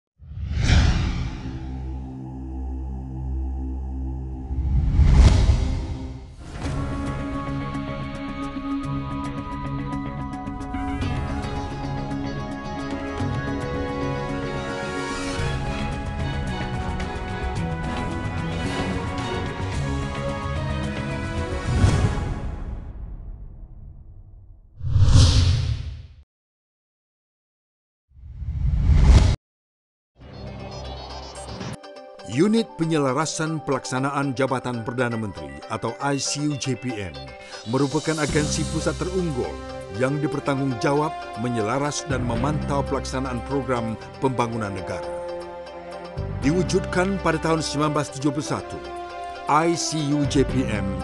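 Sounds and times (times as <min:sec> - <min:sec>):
cinematic whoosh: 0:00.2 - 0:02.4, 0:04.4 - 0:06.8, 0:24.8 - 0:26.1
low drone of title music: 0:00.4 - 0:24.3.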